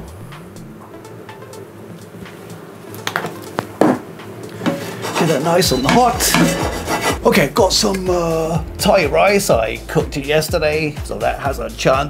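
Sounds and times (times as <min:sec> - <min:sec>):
soft background music: 0:00.0 - 0:12.0
frying pan knocking on hob: 0:03.0 - 0:04.9, 0:05.8 - 0:06.8.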